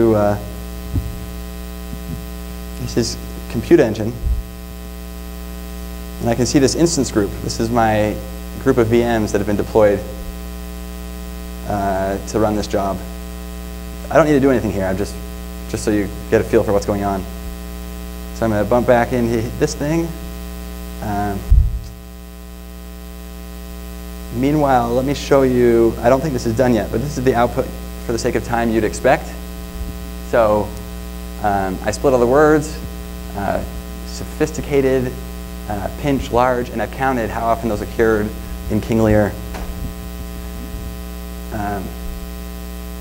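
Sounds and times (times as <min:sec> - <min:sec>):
electrical mains hum: 0:00.0 - 0:43.0
low thump: 0:00.9 - 0:02.3, 0:04.2 - 0:04.5, 0:21.5 - 0:22.0, 0:39.4 - 0:40.0.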